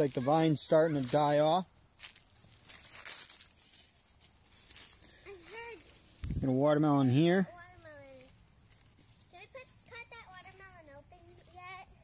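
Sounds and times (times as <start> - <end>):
leaves rustling and crinkling: 0.0 - 12.0.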